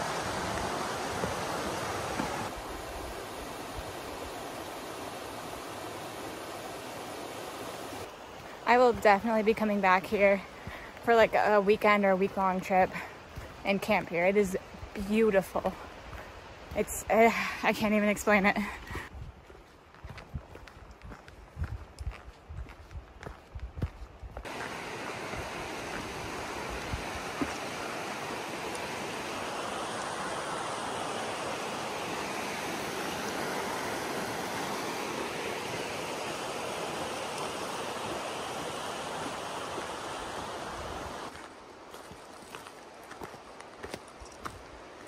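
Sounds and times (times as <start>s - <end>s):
rushing mountain stream: 0.0s - 45.0s.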